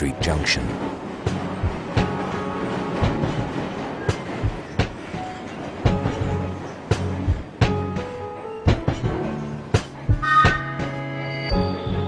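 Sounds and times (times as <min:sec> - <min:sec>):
background music: 0:00.0 - 0:12.0
train wheels clattering over rail joints: 0:00.7 - 0:11.0.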